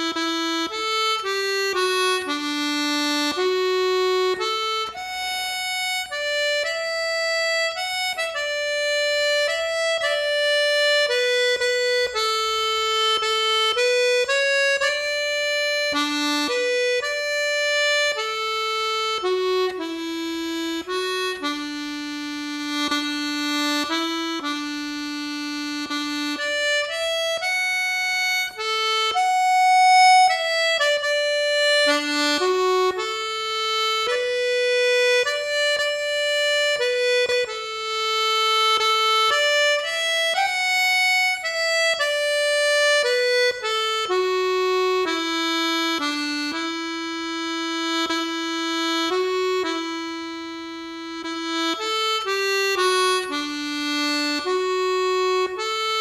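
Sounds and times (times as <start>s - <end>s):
button accordion slow melody: 0.0s - 56.0s.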